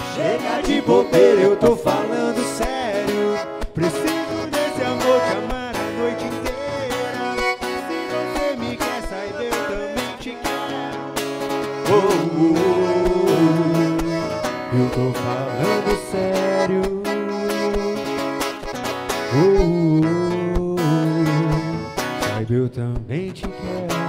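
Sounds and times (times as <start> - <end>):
man singing into a microphone: 0.0 - 18.4, 19.2 - 24.0
accordion: 0.0 - 24.0
acoustic guitar: 0.0 - 24.0.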